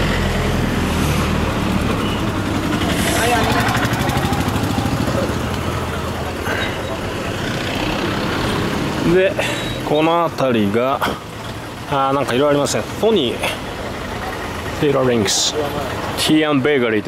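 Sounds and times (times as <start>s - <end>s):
traffic hum: 0.0s - 17.0s
vehicle engine rattling: 0.0s - 17.0s
voices of passersby: 0.0s - 17.0s.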